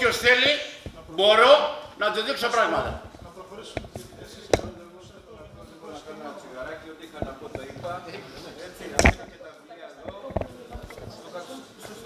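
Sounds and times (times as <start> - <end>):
faint murmur of voices: 2.0 - 12.0
sharp knocks: 8.9 - 9.4.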